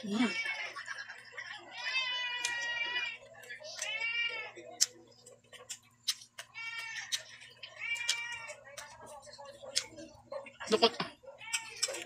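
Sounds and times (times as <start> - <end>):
lip-smacking and chewing clicks: 2.4 - 2.7, 4.7 - 10.2, 11.4 - 12.0.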